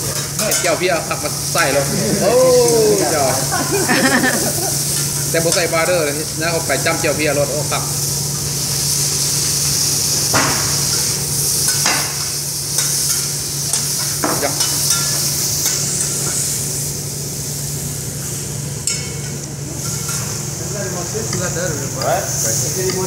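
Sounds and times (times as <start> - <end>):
food sizzling on griddle: 0.0 - 23.0.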